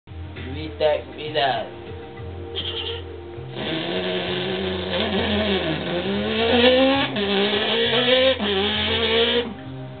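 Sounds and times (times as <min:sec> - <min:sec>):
man imitating engine revving: 0:03.6 - 0:09.5.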